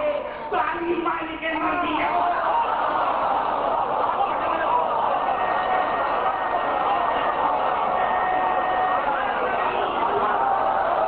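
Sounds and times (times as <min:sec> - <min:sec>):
man preaching over loudspeakers: 0:00.0 - 0:02.6, 0:04.1 - 0:10.4
crowd noise: 0:00.0 - 0:11.0.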